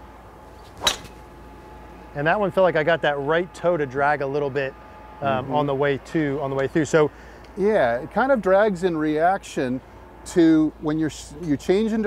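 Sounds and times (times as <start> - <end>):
golf club striking ball: 0.6 - 1.3.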